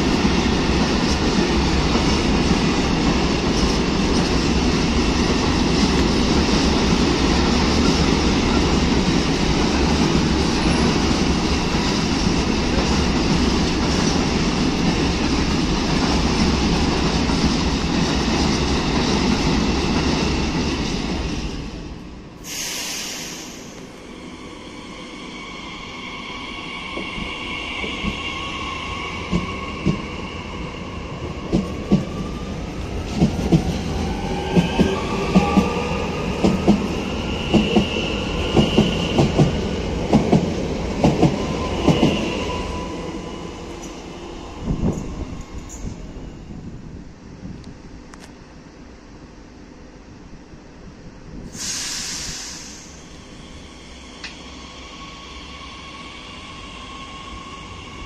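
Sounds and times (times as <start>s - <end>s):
freight train rumbling past: 0.0s - 58.0s.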